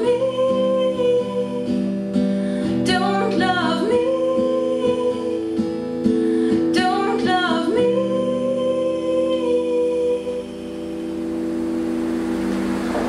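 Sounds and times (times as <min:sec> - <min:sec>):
woman singing: 0:00.0 - 0:11.2
acoustic guitar chord: 0:00.0 - 0:13.0.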